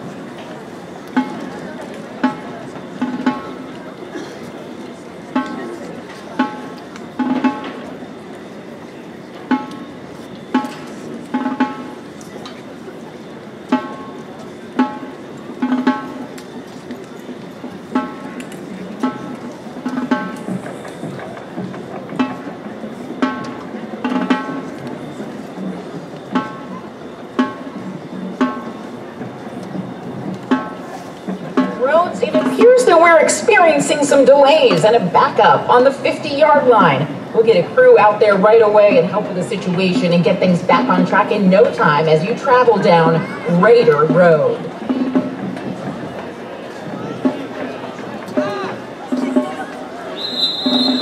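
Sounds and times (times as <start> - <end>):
crowd murmur: 0.0 - 51.0
percussion hits with ringing tone: 1.1 - 4.4, 5.3 - 8.5, 9.4 - 12.2, 13.7 - 16.6, 17.6 - 36.2.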